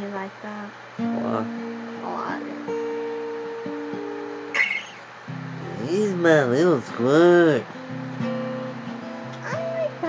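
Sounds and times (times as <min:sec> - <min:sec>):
strummed acoustic guitar chords: 0:00.9 - 0:10.0.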